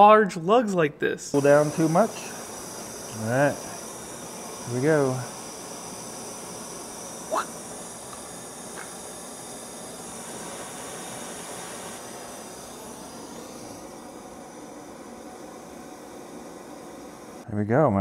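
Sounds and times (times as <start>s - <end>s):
gas torch flame hissing: 1.3s - 17.6s.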